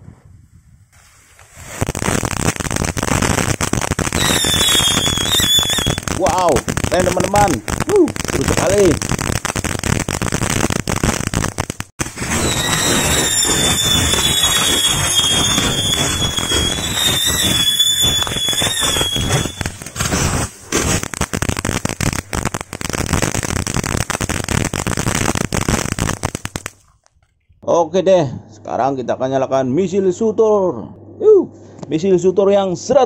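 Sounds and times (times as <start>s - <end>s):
fountain fireworks crackling: 1.4s - 26.9s
high falling whistle: 4.2s - 6.0s, 12.3s - 19.8s.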